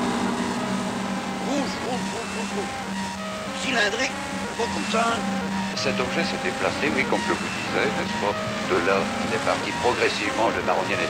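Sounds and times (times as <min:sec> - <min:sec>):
low drone: 0:00.0 - 0:11.0.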